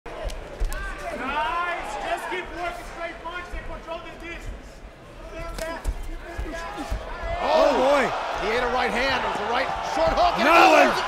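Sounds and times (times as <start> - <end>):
man shouting: 10.2 - 11.0.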